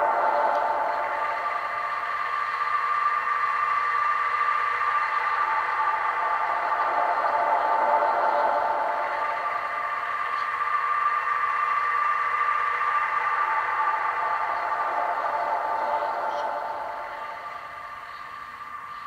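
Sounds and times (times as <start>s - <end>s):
cassette tape loop drone: 0.0s - 19.0s.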